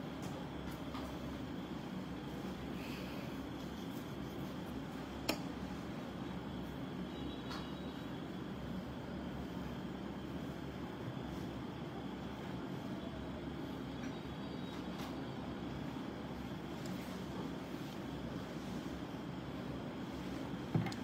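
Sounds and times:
low room rumble: 0.0 - 21.0.

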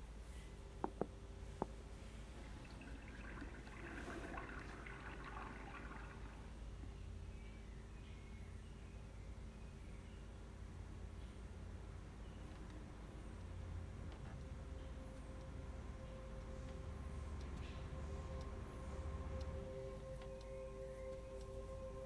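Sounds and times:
low room hum: 0.0 - 22.0.

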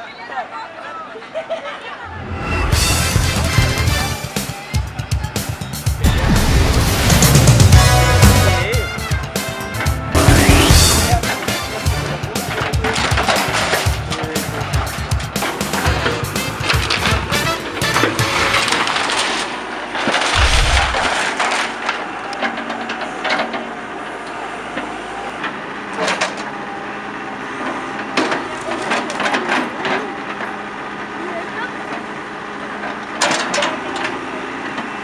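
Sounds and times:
backhoe engine humming: 7.7 - 35.0
wooden boards cracking and splintering: 18.2 - 22.0.

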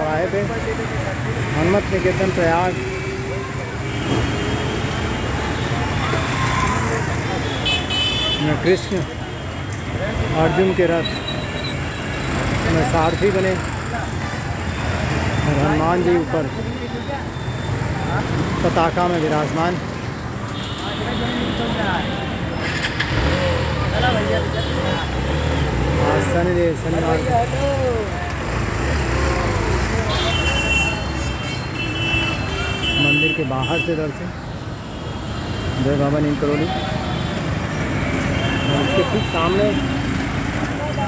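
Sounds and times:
passing street traffic: 0.0 - 41.0.

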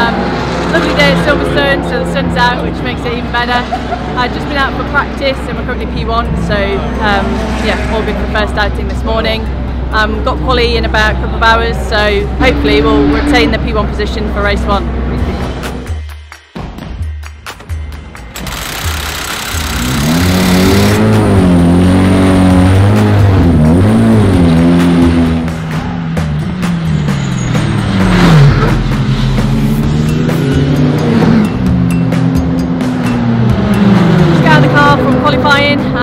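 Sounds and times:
racing car engines revving: 0.0 - 15.9, 18.3 - 36.0.

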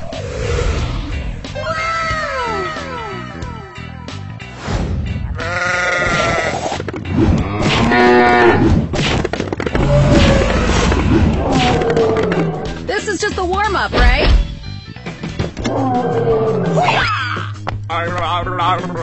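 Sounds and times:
cartoon background music: 0.0 - 19.0.

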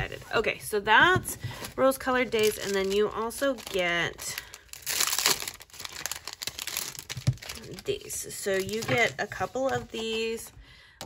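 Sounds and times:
plastic sticker sheets crinkling: 0.0 - 10.6.

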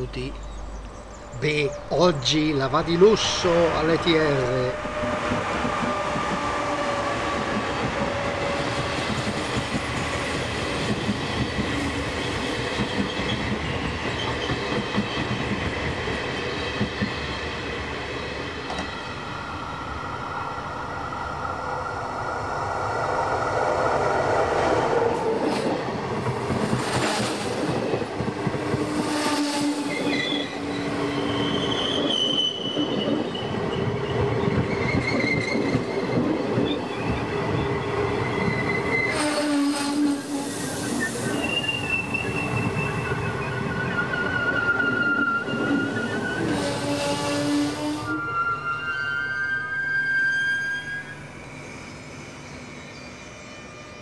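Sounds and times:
train wheels rumbling on rail: 0.0 - 19.9, 21.4 - 48.2.

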